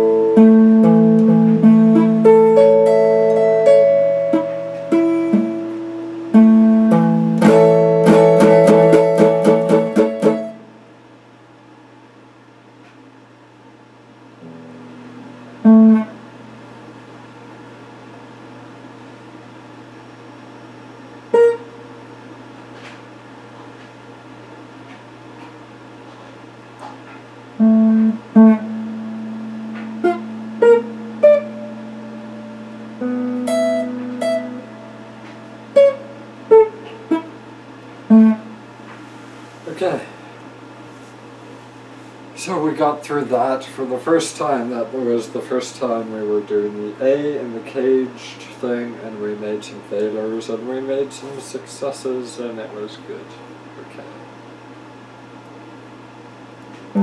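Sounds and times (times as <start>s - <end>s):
electric guitar picked notes: 0.0s - 10.8s, 14.4s - 17.0s, 21.3s - 21.8s, 27.6s - 37.4s, 38.0s - 38.8s.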